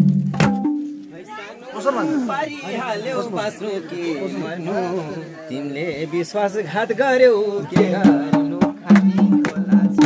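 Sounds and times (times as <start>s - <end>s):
people talking: 1.1s - 10.0s.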